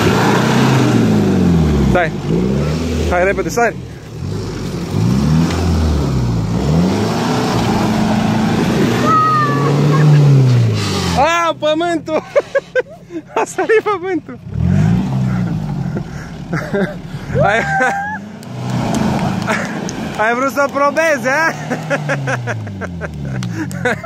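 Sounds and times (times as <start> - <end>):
engine revving: 0.0 - 11.7, 14.3 - 24.0
people shouting: 8.9 - 10.2, 17.4 - 18.4.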